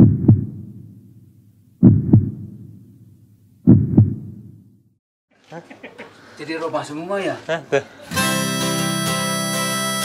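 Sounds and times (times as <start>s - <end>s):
heartbeat thumps: 0.0s - 1.0s, 1.8s - 3.0s, 3.6s - 4.7s.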